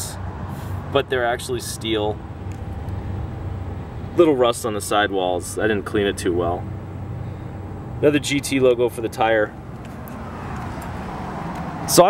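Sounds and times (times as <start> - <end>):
passing vehicle rushing noise: 0.0 - 4.4, 9.5 - 12.0.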